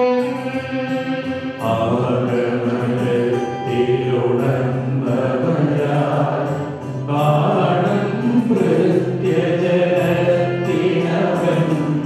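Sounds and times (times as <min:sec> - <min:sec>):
choir singing a hymn: 0:01.6 - 0:12.0.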